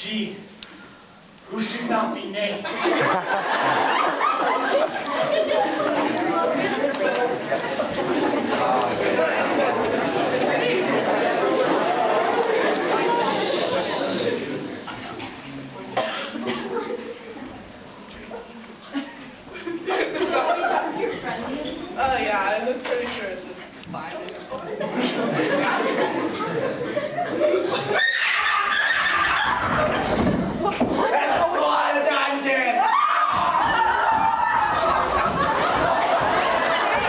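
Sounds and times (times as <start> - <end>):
crowd chatter: 2.8 - 37.0
crowd screaming and cheering: 27.8 - 29.9, 32.8 - 37.0.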